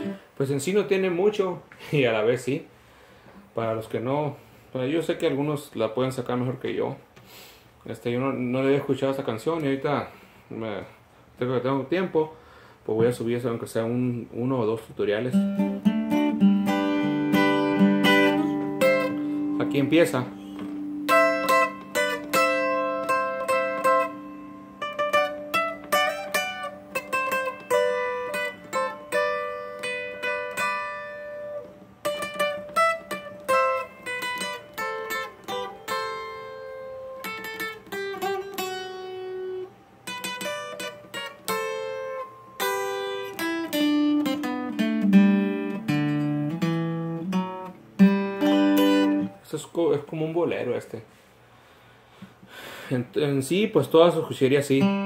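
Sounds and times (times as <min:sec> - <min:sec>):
twelve-string acoustic guitar fingerstyle: 0:15.1 - 0:49.4, 0:54.6 - 0:55.0.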